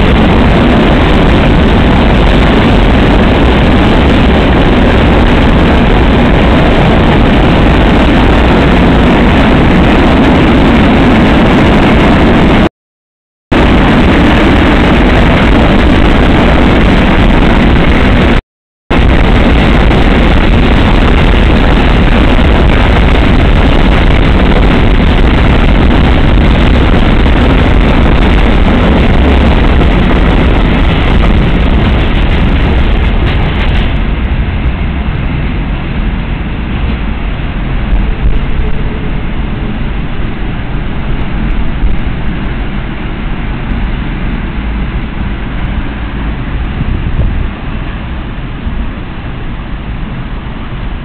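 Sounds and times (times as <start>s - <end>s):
freight train rolling past: 18.9s - 51.0s.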